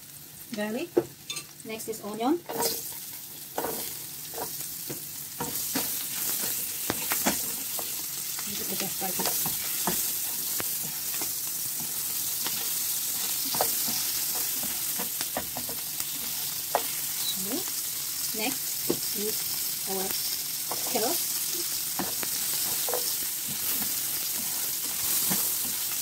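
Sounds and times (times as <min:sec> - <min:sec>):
onion sizzling in frying pan: 0:00.0 - 0:26.0
spatula scraping a pan: 0:02.5 - 0:17.4, 0:20.6 - 0:26.0.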